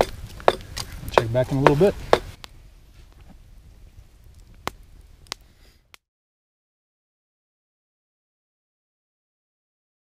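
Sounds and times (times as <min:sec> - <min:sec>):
campfire flames burning: 0:00.0 - 0:06.0
fire crackling pop: 0:00.0 - 0:06.0.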